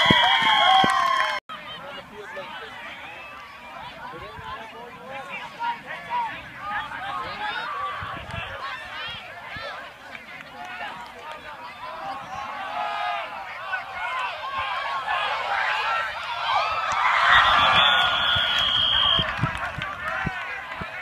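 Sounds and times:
crowd shouting and cheering: 0.0s - 21.0s
referee's whistle: 17.2s - 19.3s.

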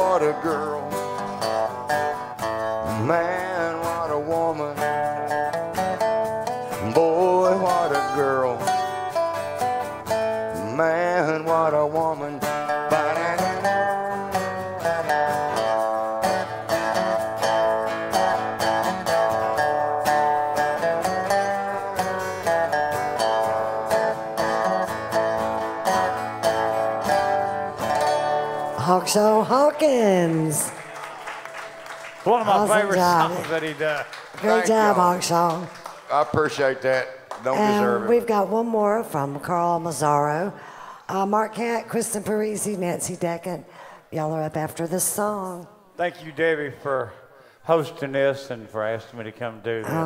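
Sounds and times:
sliding guitar melody: 0.0s - 35.9s, 37.4s - 40.6s
acoustic guitars strumming: 0.0s - 45.6s.

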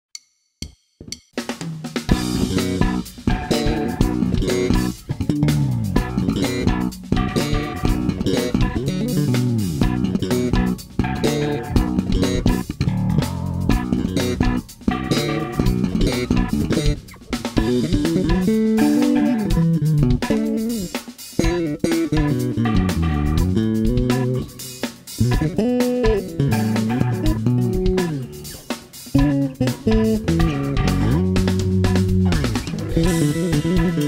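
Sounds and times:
electric bass fast runs: 2.1s - 20.3s
bass tapping on fretboard: 2.1s - 34.0s.

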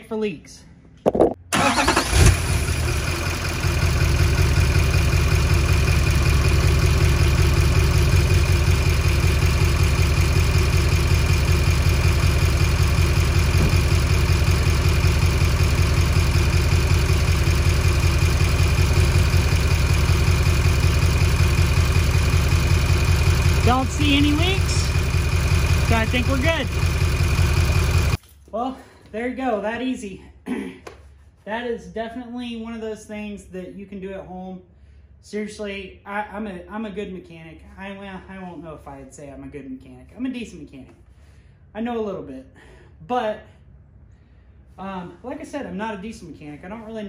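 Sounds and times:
diesel engine starting and idling: 1.5s - 28.2s.

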